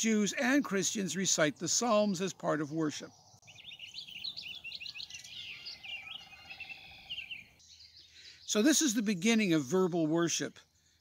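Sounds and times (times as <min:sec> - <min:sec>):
birds chirping and singing: 0:00.0 - 0:11.0.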